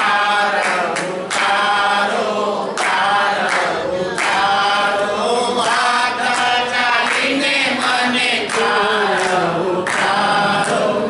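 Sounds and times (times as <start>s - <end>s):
group singing a chant: 0.0s - 11.0s
hand-clapping: 0.0s - 11.0s.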